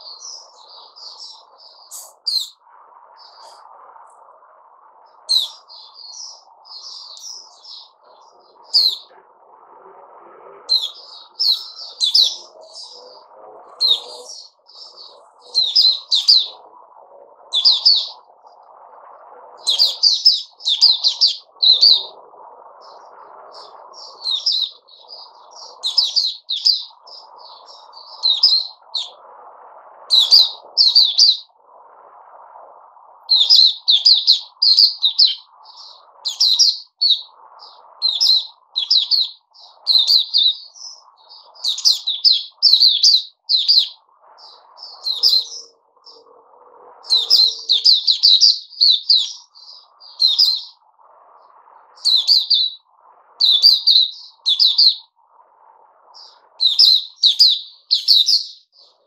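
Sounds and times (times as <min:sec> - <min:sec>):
bird chirping and twittering: 0:00.0 - 0:04.2, 0:04.8 - 0:18.6, 0:19.5 - 0:29.3, 0:30.0 - 0:31.6, 0:33.2 - 0:55.2, 0:56.0 - 0:59.0.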